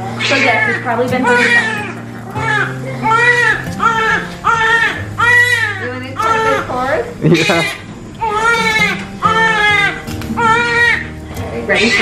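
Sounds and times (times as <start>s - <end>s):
newborn baby crying: 0.0s - 12.0s.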